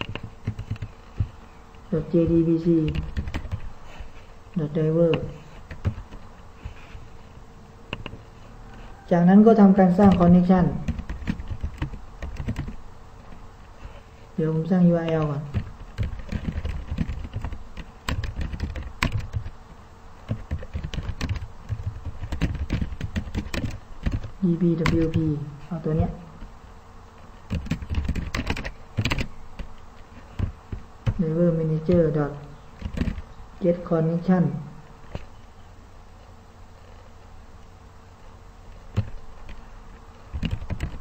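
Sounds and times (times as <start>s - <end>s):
typing on keyboard: 0.0s - 1.3s, 2.8s - 3.7s, 5.1s - 6.2s, 10.0s - 12.8s, 15.0s - 19.5s, 20.3s - 25.2s, 27.5s - 29.7s, 30.3s - 31.2s, 32.8s - 33.2s, 38.9s - 39.2s, 40.3s - 41.0s.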